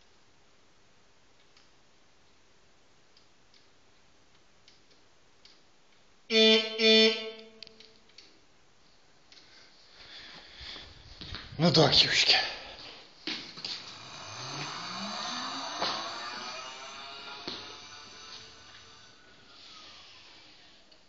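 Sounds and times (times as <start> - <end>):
faint clicks: 3.1 - 6.1
electric horn beeps: 6.3 - 7.9, 13.9 - 19.2.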